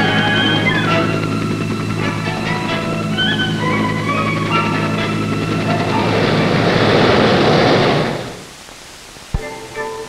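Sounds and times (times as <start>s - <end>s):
background music: 0.0s - 7.0s, 9.4s - 10.0s
helicopter engine and rotor: 0.0s - 8.4s.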